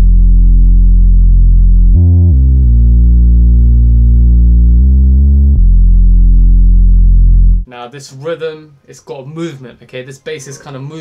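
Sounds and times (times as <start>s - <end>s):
deep synth bass line: 0.0s - 7.7s.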